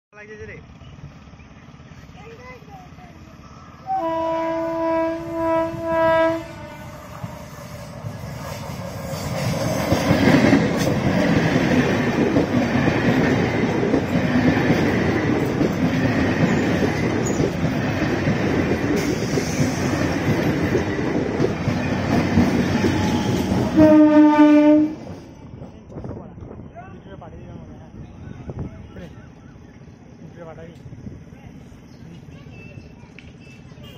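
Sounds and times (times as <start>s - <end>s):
train wheels rumbling on rails: 0.4s - 33.9s
train horn: 3.8s - 7.9s, 23.0s - 25.0s.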